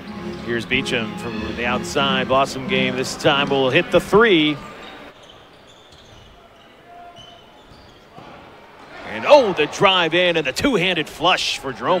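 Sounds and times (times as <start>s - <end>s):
crowd murmuring: 0.0s - 5.1s
faint high squeaks: 4.6s - 8.2s.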